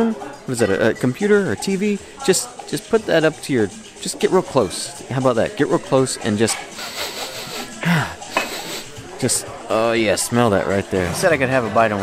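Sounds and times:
restaurant hubbub: 0.0 - 12.0
dishes and cutlery clinking: 5.7 - 7.0, 8.2 - 8.9.

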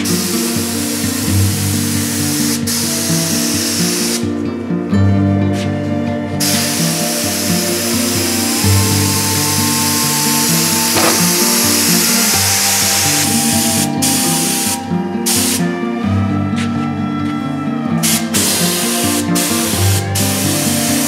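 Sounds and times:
spray gun hissing: 0.0 - 4.2, 6.4 - 15.6, 18.0 - 21.0
background music: 0.0 - 21.0.

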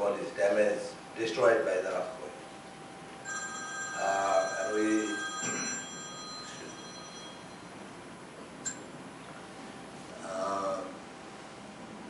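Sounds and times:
bell-like electronic ringing tone: 3.2 - 7.8.

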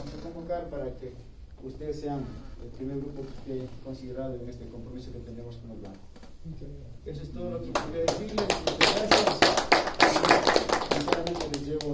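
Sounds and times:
audience applauding: 7.8 - 11.9.

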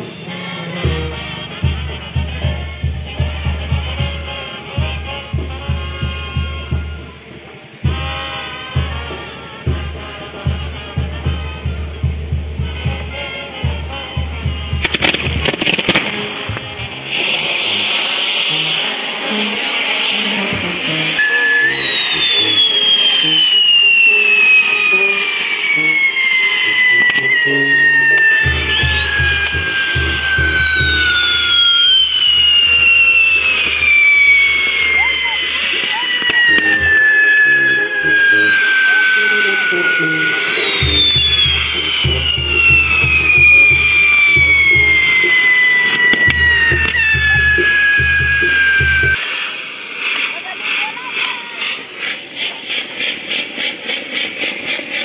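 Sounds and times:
fireworks crackle: 0.0 - 55.0
fireworks hissing: 0.0 - 55.0
falling whistles: 5.7 - 9.1, 14.0 - 53.2
low throb: 20.3 - 49.2.

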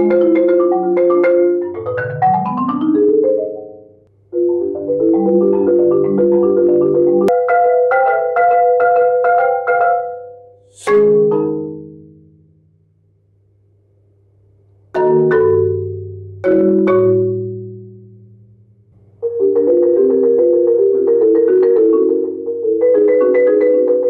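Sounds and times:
marimba playing: 0.0 - 12.6, 15.0 - 18.4, 19.2 - 24.0.

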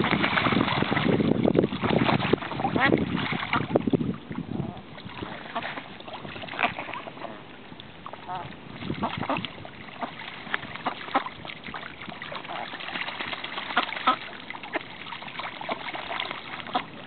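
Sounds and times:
ducks splashing in water: 0.0 - 17.0.

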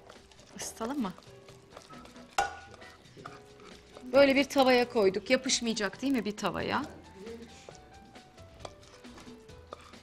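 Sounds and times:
spoon scraping wet paste: 0.0 - 4.2, 8.5 - 10.0.

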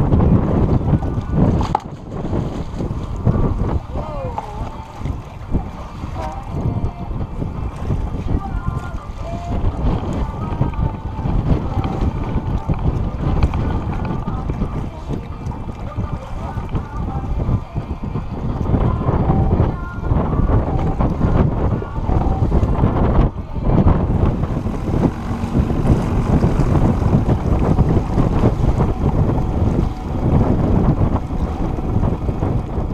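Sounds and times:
wind buffeting microphone: 0.0 - 32.9
faint voices: 3.0 - 32.9.

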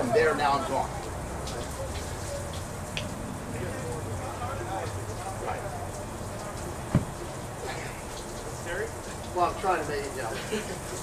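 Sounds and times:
sharp thump: 6.9 - 7.2.

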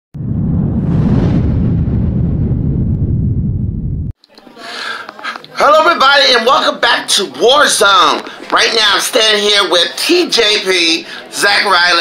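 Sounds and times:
deep rumbling explosion effect: 0.1 - 4.2.

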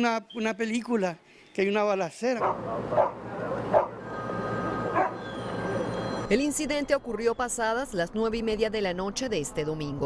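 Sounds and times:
street noise: 0.0 - 10.0
dog barking: 2.4 - 4.0, 5.0 - 5.3.

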